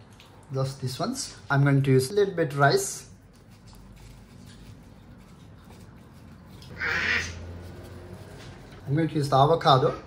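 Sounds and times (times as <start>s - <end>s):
hands rustling nori sheet: 3.2s - 8.8s.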